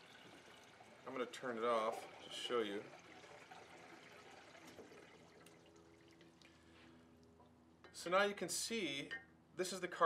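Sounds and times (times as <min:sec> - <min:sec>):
water trickling and dripping: 0:00.0 - 0:07.4.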